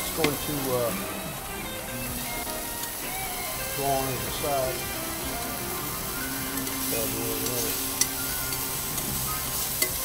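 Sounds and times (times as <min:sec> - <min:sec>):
background music with held notes: 0:00.0 - 0:10.0
prawns sizzling in a pan: 0:00.0 - 0:10.0.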